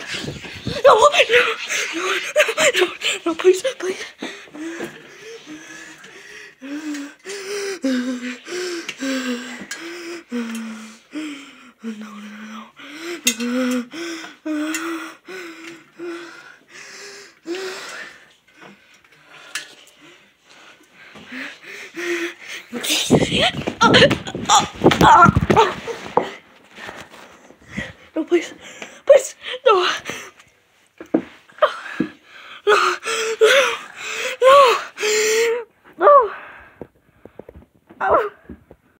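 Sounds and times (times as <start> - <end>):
quick breaths: 3.9 - 11.8
person crying out high-pitched: 22.8 - 25.9
person gasping cries: 31.6 - 36.4.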